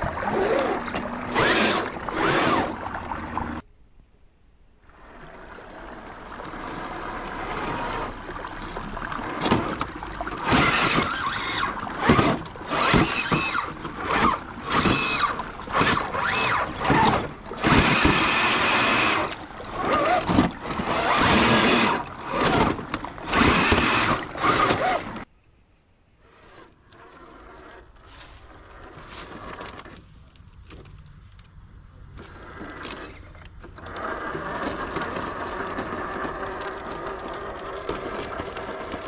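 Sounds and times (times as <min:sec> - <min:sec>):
water splashing: 0:00.0 - 0:03.6, 0:04.8 - 0:25.2
rc car motor whining: 0:00.2 - 0:02.8, 0:10.4 - 0:25.3.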